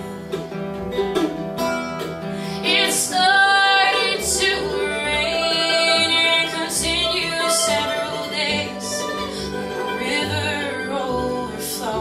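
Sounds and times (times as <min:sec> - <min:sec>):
mandolin: 0:00.0 - 0:12.0
strummed acoustic guitar: 0:00.0 - 0:12.0
upright bass: 0:00.0 - 0:12.0
woman singing ballad: 0:02.6 - 0:12.0.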